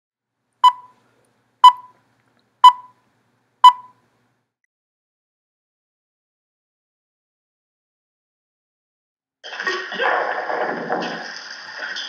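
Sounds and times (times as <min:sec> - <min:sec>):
short high countdown beeps: 0:00.6 - 0:00.9, 0:01.6 - 0:02.0, 0:02.6 - 0:03.0, 0:03.6 - 0:04.0.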